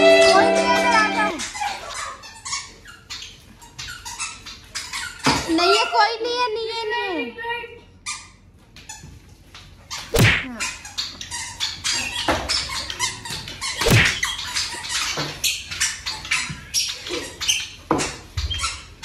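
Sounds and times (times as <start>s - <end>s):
bare feet squeaking on tiles: 0.0s - 5.8s, 8.1s - 19.0s.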